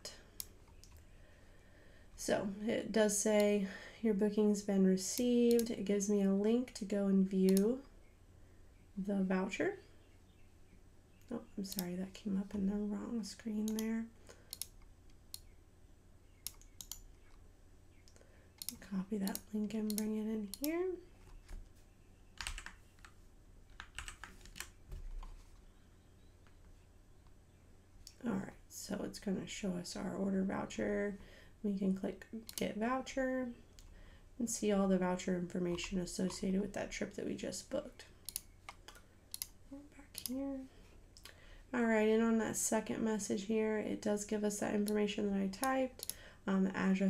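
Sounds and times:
mouse click: 13.6s - 15.5s, 16.4s - 17.4s, 38.2s - 39.6s
keyboard keys clicking: 22.4s - 23.1s, 23.7s - 25.4s.

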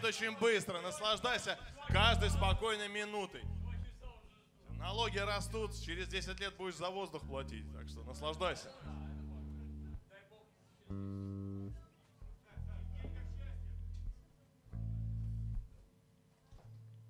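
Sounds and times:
electric guitar low notes: 1.9s - 2.6s, 3.4s - 4.0s, 4.7s - 6.4s, 7.2s - 10.0s, 10.9s - 14.2s, 14.8s - 15.8s.

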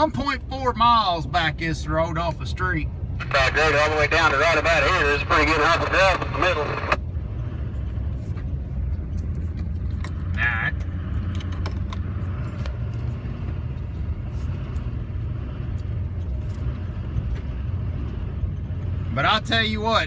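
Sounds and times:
truck engine rumbling: 0.0s - 20.0s
light rattles and clicks: 8.3s - 14.1s.

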